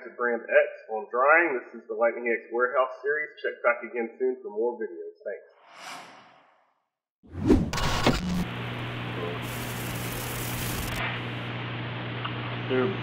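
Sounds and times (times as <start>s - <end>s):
burst of static: 7.4s - 11.4s
tape hiss: 7.8s - 11.4s
steady electrical hum: 7.8s - 13.0s.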